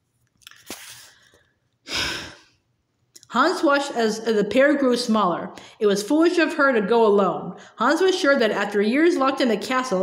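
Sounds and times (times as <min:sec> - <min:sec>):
person breathing out: 0:00.6 - 0:02.6.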